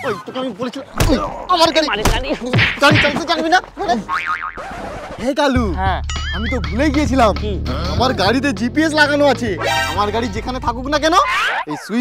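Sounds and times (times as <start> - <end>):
cartoon spring boing: 4.1 - 4.6.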